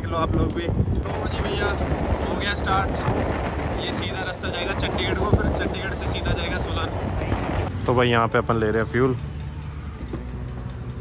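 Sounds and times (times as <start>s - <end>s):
motorcycle engine idling: 4.6s - 11.0s.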